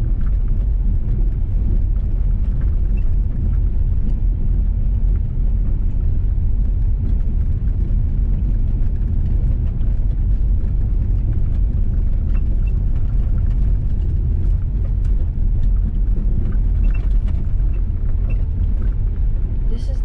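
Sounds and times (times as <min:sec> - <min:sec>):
vehicle rumbling on gravel: 0:00.0 - 0:20.0.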